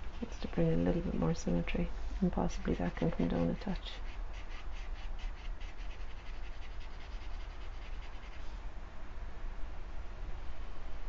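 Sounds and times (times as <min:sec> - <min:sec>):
pencil scratching on paper: 0:02.5 - 0:08.4.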